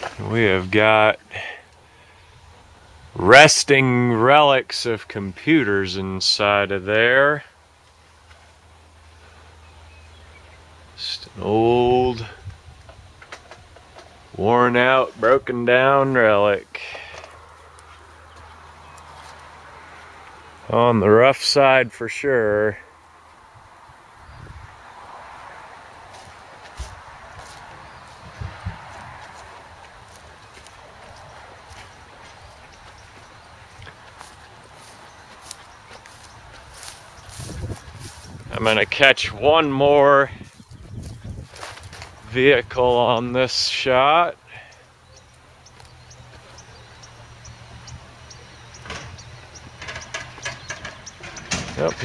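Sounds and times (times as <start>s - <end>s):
faint background noise: 0.0s - 52.0s
footsteps in dry grass: 17.0s - 20.6s, 25.3s - 43.1s, 44.9s - 49.8s
scrap metal clanks and crunches: 48.7s - 52.0s.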